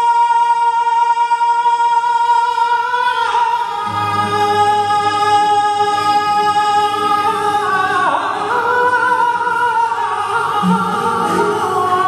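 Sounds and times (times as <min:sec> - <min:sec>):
man singing flamenco: 0:00.0 - 0:12.0.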